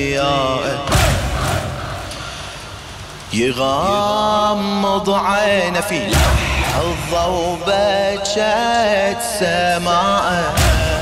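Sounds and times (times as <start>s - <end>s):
crowd noise: 0.0s - 9.2s.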